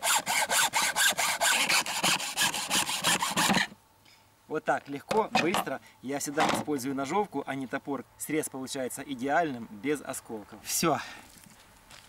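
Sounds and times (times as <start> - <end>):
hacksaw rasping through bone: 0.0 - 3.7.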